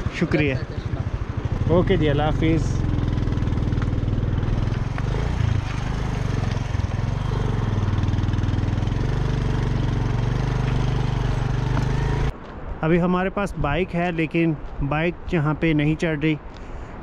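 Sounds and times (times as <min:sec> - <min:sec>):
motorcycle engine running: 0:00.0 - 0:12.3.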